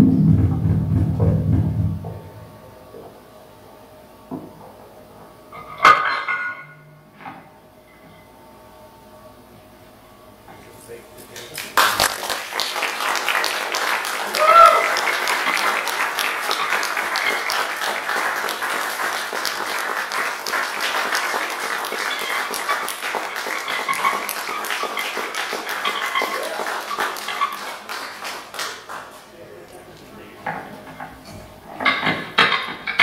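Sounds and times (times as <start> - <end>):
audience applauding: 11.2 - 30.2
person whooping: 14.2 - 15.5.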